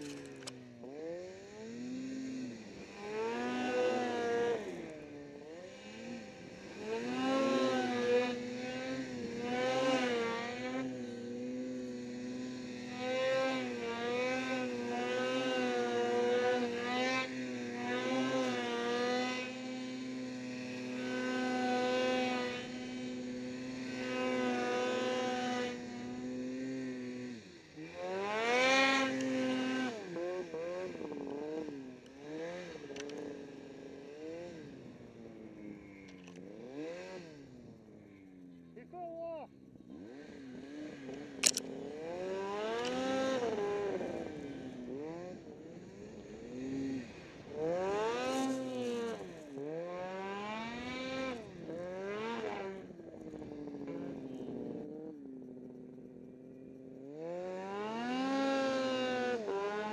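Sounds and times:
snowmobile engine running: 0.0 - 59.9.

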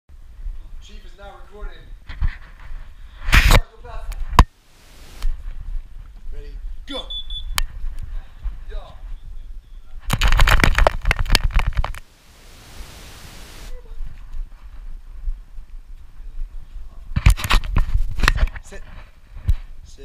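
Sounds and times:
camera rubbing and knocking: 2.1 - 3.6, 10.0 - 12.1, 17.1 - 19.7
steady hiss: 2.9 - 5.8, 11.9 - 13.9.

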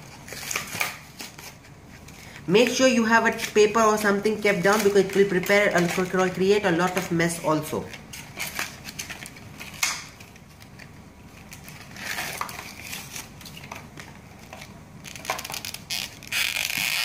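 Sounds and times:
plastic packaging crinkling: 0.0 - 17.0.

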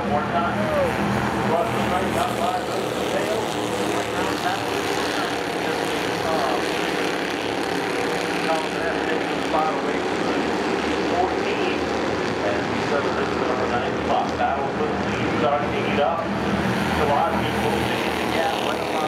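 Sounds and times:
faint voices: 0.0 - 19.0
race car engines droning: 0.0 - 19.0.

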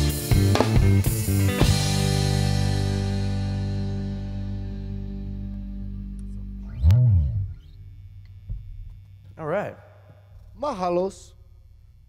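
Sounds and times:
electric guitars and bass chord ringing: 0.0 - 9.6
low note sliding: 4.9 - 8.7.

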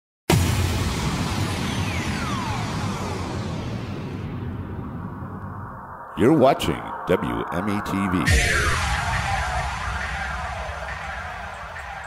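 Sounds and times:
falling whistle-like tones: 1.6 - 3.4, 5.2 - 12.0.

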